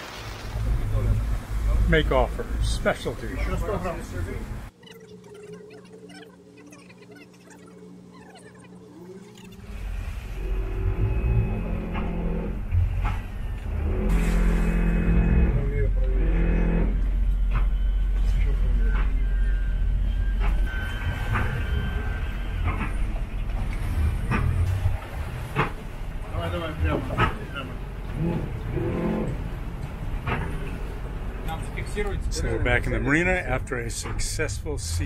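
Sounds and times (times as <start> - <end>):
outboard engines rumbling: 0.0 - 35.0.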